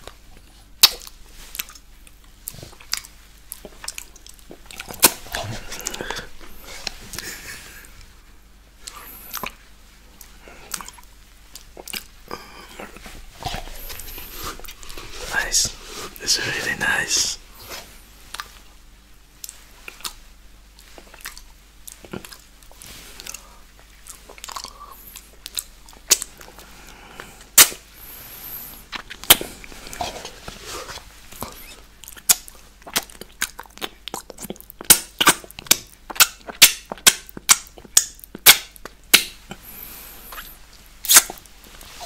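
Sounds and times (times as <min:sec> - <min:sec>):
lip smacks: 0:00.0 - 0:08.1, 0:08.8 - 0:09.6, 0:10.2 - 0:15.7, 0:19.4 - 0:27.9, 0:28.6 - 0:39.7, 0:40.3 - 0:42.0.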